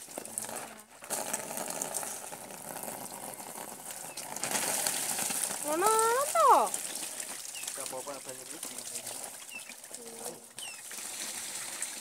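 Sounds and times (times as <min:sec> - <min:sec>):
rushing bubbling water: 0:00.0 - 0:12.0.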